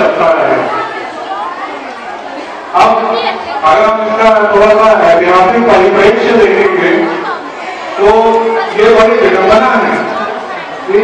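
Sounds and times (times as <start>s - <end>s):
man speaking loudly: 0.0s - 0.7s, 2.8s - 7.2s, 8.0s - 10.3s
audience chatter: 0.0s - 11.0s.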